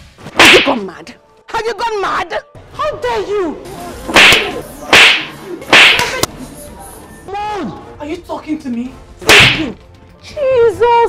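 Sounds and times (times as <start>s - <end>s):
slaps on a head: 0.4s - 0.8s, 4.1s - 6.3s, 9.2s - 9.8s.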